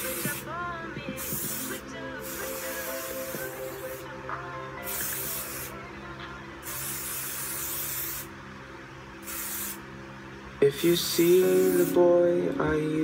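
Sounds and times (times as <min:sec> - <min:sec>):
aerosol spray can hissing: 0:00.0 - 0:00.5, 0:01.1 - 0:04.1, 0:04.8 - 0:05.8, 0:06.6 - 0:08.3, 0:09.2 - 0:09.8, 0:11.1 - 0:12.0
faint background music: 0:00.0 - 0:08.3.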